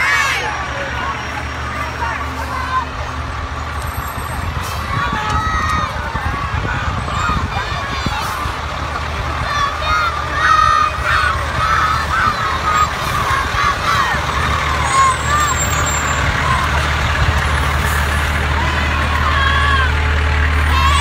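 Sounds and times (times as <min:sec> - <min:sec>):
children shouting: 0:00.0 - 0:03.0, 0:04.4 - 0:21.0
truck engine rumble: 0:00.0 - 0:21.0.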